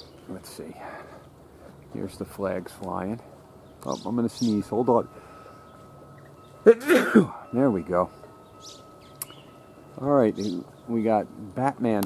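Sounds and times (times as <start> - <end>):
faint bird chirps: 3.6 - 6.8, 7.4 - 11.0.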